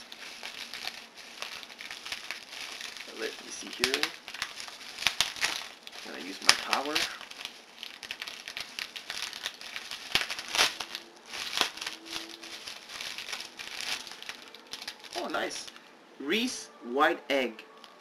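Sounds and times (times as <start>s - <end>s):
bubble wrap crackling: 0.0s - 15.9s.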